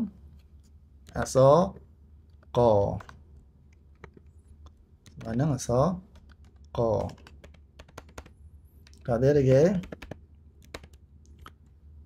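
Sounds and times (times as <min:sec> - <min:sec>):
person speaking: 0:01.0 - 0:03.3, 0:04.0 - 0:11.6
keyboard keystroke clicks: 0:02.8 - 0:03.2, 0:06.1 - 0:09.0, 0:09.8 - 0:11.6.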